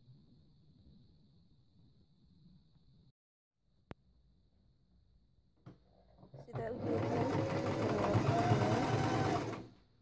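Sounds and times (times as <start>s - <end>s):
sewing machine stitching: 6.1s - 9.8s.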